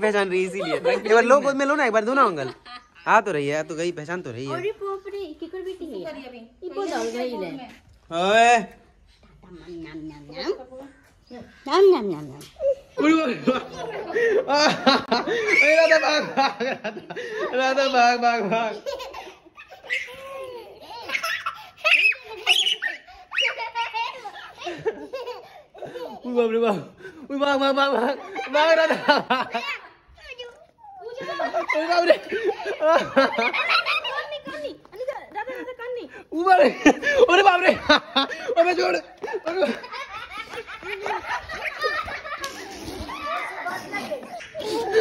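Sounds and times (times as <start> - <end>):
young child laughing: 18.7 - 26.4, 39.2 - 45.0
people talking over each other: 31.2 - 42.2.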